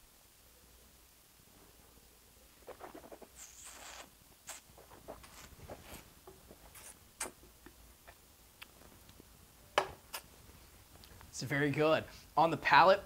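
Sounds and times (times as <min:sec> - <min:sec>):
hissing slurp of wine: 0:02.9 - 0:05.8
wet mouth clicks and smacks: 0:06.8 - 0:08.8.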